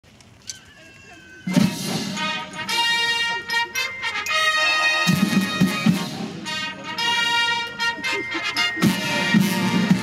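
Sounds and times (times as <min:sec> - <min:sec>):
military brass band playing: 0:01.5 - 0:10.0.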